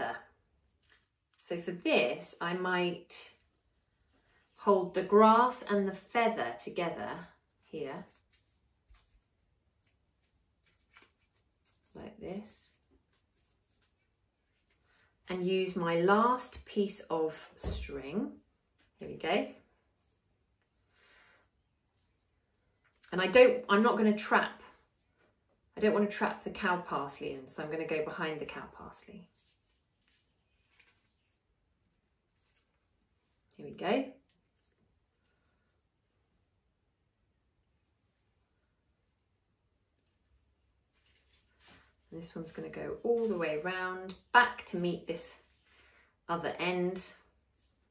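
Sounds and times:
twine and dried grass rustling: 0.5 - 1.9, 7.4 - 15.0, 28.5 - 36.3, 39.9 - 46.1.

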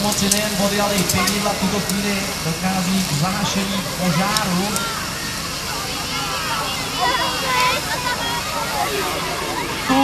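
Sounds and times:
fire hose spraying water: 0.0 - 10.0
onlookers talking: 0.0 - 10.0.

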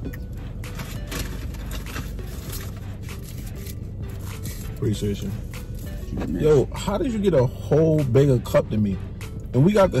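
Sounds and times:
faint background music: 0.0 - 10.0
low steady hum: 0.0 - 10.0
paper wrappers crinkling: 0.8 - 4.8.

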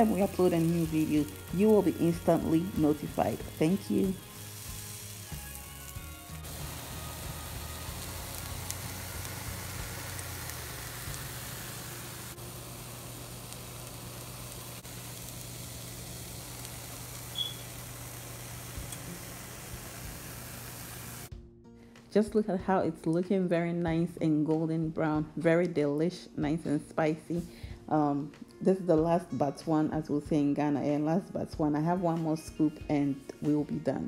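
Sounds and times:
fritters sizzling in oil: 0.0 - 21.3.

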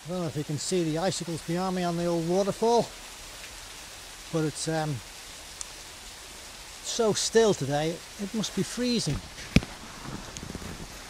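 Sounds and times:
running water hiss: 0.0 - 11.0.

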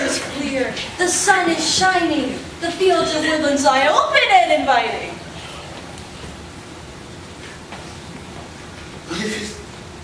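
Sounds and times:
auditorium room hiss: 0.0 - 10.0.

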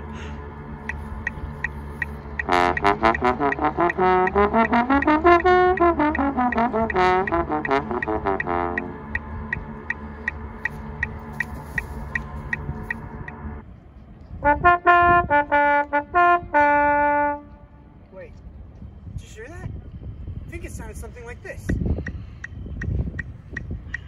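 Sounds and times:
light ticking: 0.8 - 13.5
trombone playing: 0.9 - 13.6, 14.4 - 17.9.

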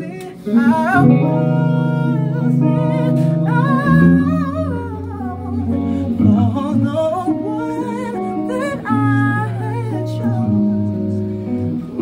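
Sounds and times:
electric guitar chords: 0.0 - 12.0
man singing: 0.0 - 12.0.

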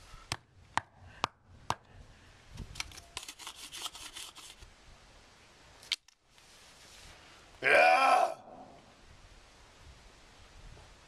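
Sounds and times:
wooden stick scraping stones: 2.7 - 4.6
man groaning: 7.6 - 8.8.

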